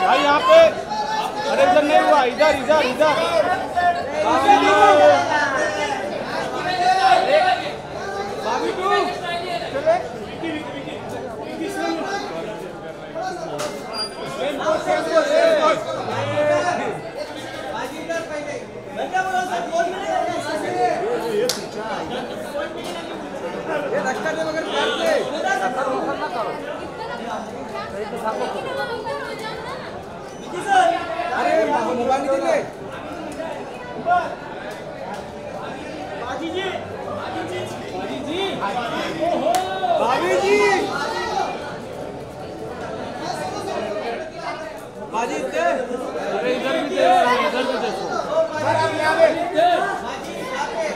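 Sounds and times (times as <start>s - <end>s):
overlapping chatter of voices: 0.0s - 50.9s.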